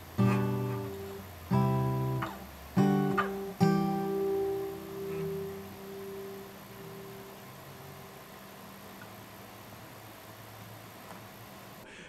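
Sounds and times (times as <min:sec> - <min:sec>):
strummed acoustic guitar chord: 0:00.0 - 0:08.8
faint steady hum: 0:00.0 - 0:12.0.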